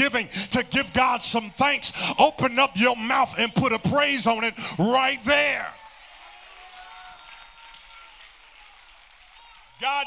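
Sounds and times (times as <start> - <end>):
congregation room sound: 0.0 - 10.0.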